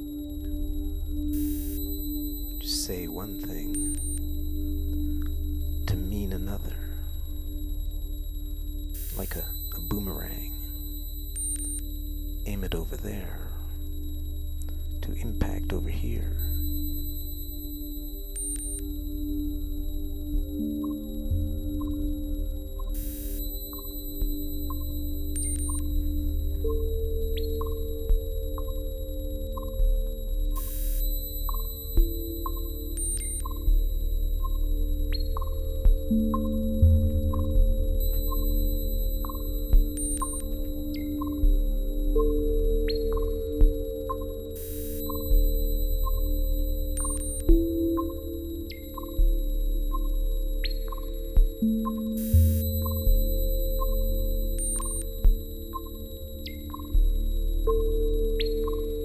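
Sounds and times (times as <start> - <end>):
held synth tone: 0.0 - 49.3
low electronic drone: 0.0 - 59.0.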